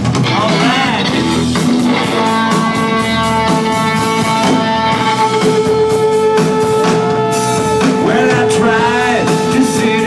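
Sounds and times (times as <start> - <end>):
drum kit: 0.0 - 10.0
electric guitars strumming: 0.0 - 10.0.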